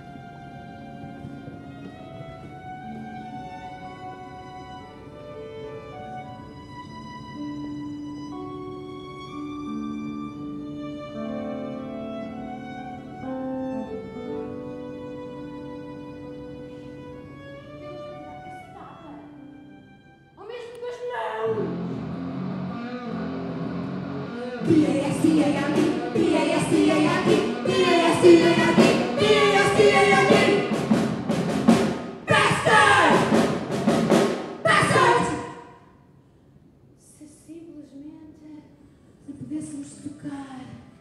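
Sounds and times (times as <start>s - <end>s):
slow bowed strings music: 0.0s - 20.5s
women singing and chanting: 24.5s - 30.8s, 32.3s - 33.3s, 34.7s - 35.7s.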